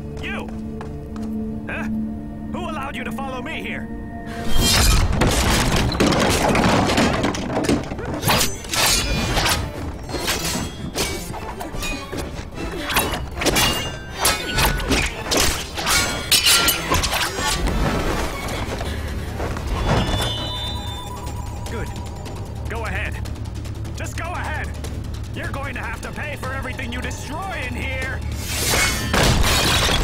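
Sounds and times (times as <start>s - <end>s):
dramatic score music: 0.0s - 30.0s
low musical drone: 0.7s - 4.6s
sharp hits and crashes: 4.4s - 20.6s, 28.3s - 30.0s
man talking: 24.0s - 24.8s, 25.4s - 28.2s.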